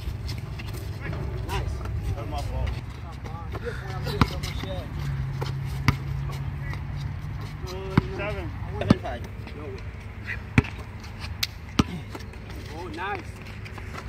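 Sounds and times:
players' voices and calls: 0:00.1 - 0:14.0
basketball bouncing on hard court: 0:07.9 - 0:08.2, 0:10.6 - 0:10.8.

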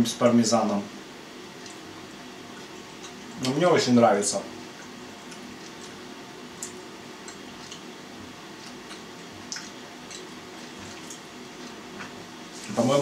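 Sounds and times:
faint room hum: 0:00.0 - 0:13.0
person chewing: 0:01.6 - 0:03.6, 0:04.7 - 0:12.5.

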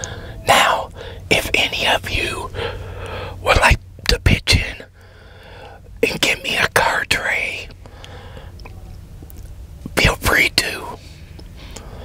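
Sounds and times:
man whispering: 0:00.0 - 0:05.0, 0:06.0 - 0:07.8, 0:09.9 - 0:11.2
steady low hum: 0:00.0 - 0:12.0.

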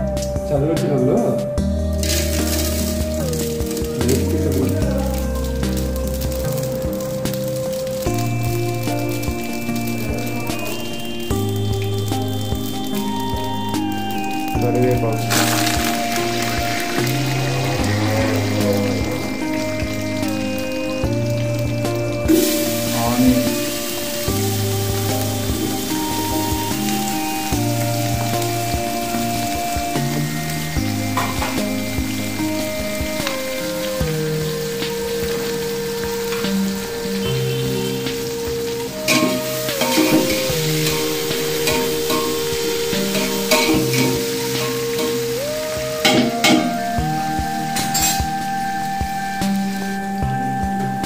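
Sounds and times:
soft background music: 0:00.0 - 0:51.0
onions sizzling in hot oil: 0:01.8 - 0:51.0.

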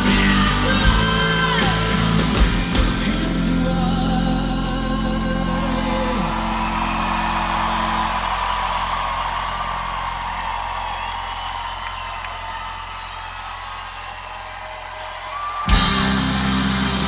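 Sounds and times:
crowd cheering and whooping: 0:05.1 - 0:17.0
rock band chord ringing: 0:15.7 - 0:17.0.

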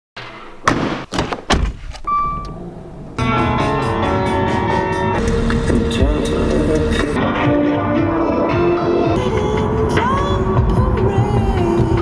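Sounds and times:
car engine starting: 0:02.0 - 0:07.4
music: 0:03.2 - 0:12.0.

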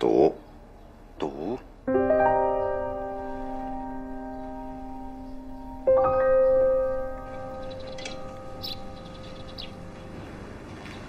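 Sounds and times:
held piano chord: 0:01.9 - 0:11.0
faint bird chirps: 0:07.3 - 0:11.0.

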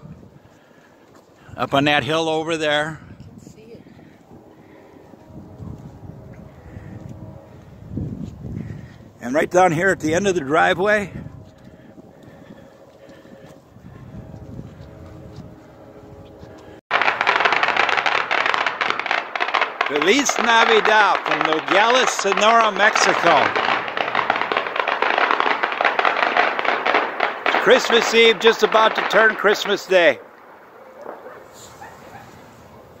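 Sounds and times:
firecrackers crackling: 0:16.9 - 0:33.0
quiet night-time town ambience: 0:28.8 - 0:33.0
distant dogs barking: 0:30.6 - 0:33.0.

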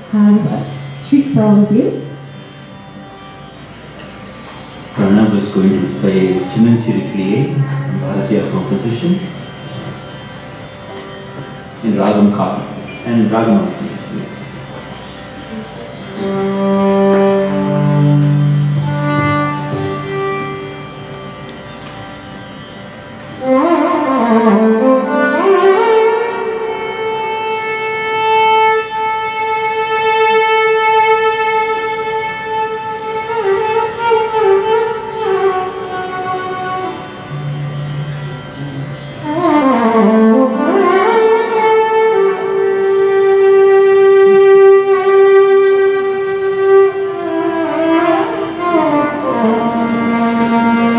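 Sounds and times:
violin playing slow improvisation: 0:00.0 - 0:50.9.

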